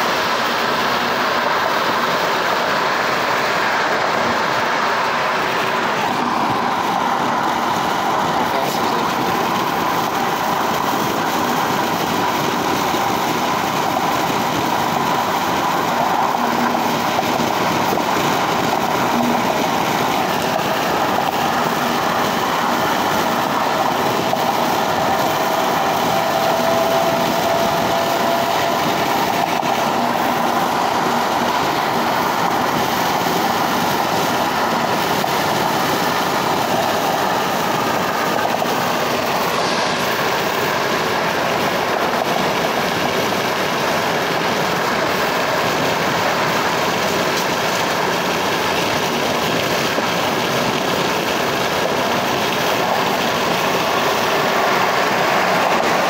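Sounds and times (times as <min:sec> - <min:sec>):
wind and traffic hum: 0:00.0 - 0:56.0.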